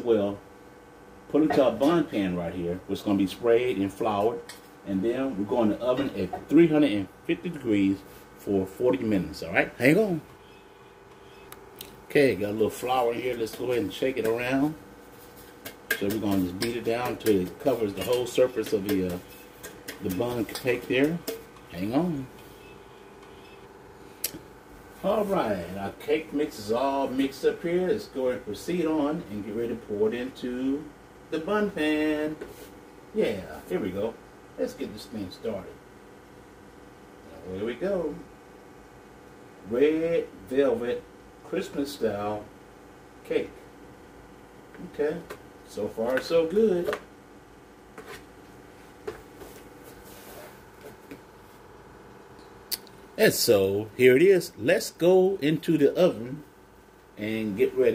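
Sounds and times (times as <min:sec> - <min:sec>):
faint steady hum: 0:00.0 - 0:57.9.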